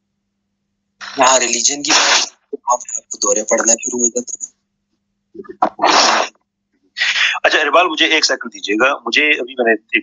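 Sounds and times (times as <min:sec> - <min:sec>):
breathy burst into microphone: 0:07.0 - 0:07.5.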